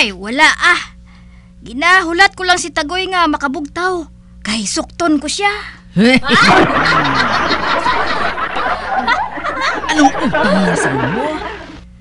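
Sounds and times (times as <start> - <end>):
comedy laugh track: 6.0 - 11.9.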